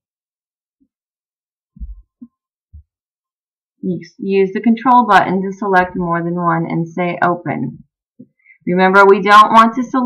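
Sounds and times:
soft low thumps: 1.8 - 3.0.

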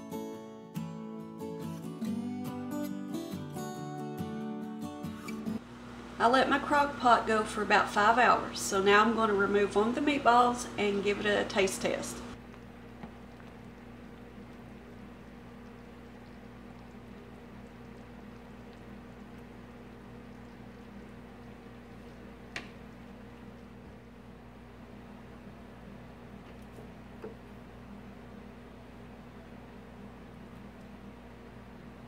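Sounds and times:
low hum: 9.4 - 32.0.

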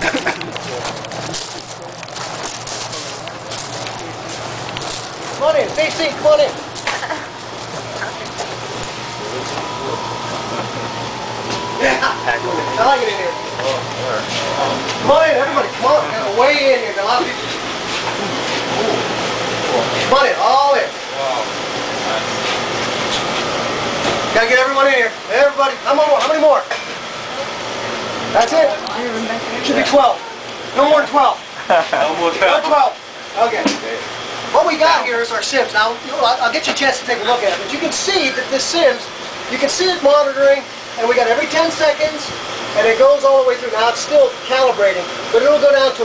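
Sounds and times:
people talking: 0.0 - 23.4, 24.1 - 46.0
machinery humming: 0.0 - 46.0
footsteps crunching on gravel: 0.6 - 9.7.

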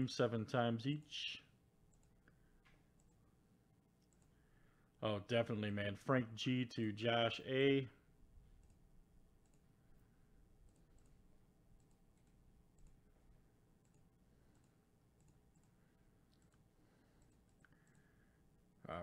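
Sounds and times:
computer mouse clicks: 1.9 - 3.2, 4.0 - 4.4, 8.6 - 8.8, 9.4 - 9.7, 10.6 - 13.1, 13.8 - 18.1.

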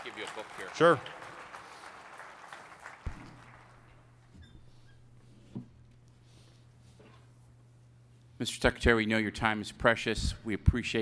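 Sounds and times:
audience applause: 0.0 - 3.9
steady low hum: 3.4 - 11.0.

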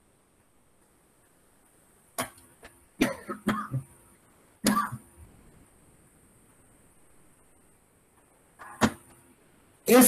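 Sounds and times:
man coughing: 3.0 - 3.9, 4.6 - 5.0.

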